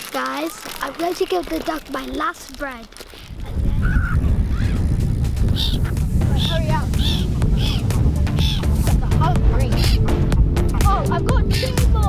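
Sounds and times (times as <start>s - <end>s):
gulls crying: 3.5s - 12.0s.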